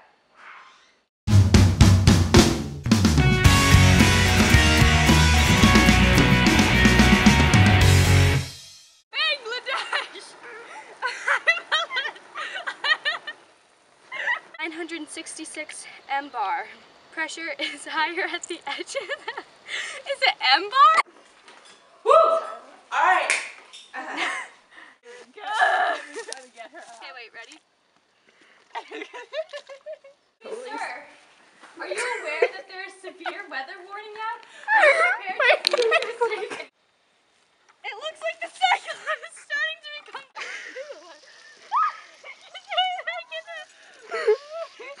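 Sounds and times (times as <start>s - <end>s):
people talking: 9.2s - 10.4s, 14.6s - 19.1s, 20.0s - 21.0s, 25.2s - 27.6s, 30.4s - 31.2s, 31.8s - 36.7s, 37.8s - 45.0s.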